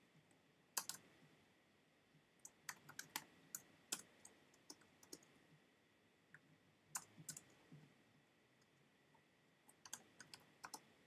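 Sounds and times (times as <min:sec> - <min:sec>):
faint keyboard typing: 0:00.2 - 0:01.2, 0:02.4 - 0:05.4, 0:06.3 - 0:08.0, 0:08.6 - 0:11.0.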